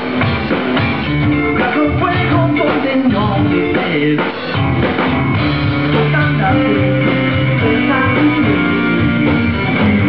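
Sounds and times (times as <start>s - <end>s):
electric guitar: 0.0s - 10.0s
rock band playing live: 0.0s - 10.0s.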